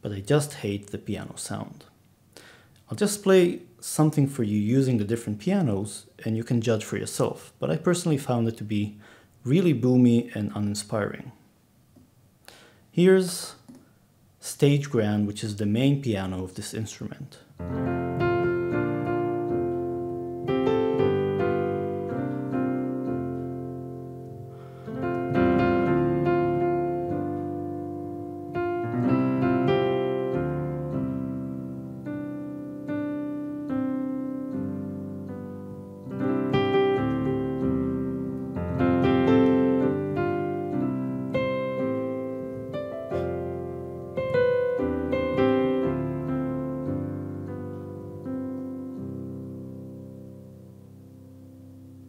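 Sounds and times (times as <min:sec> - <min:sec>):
grand piano chords: 0:17.6 - 0:52.0.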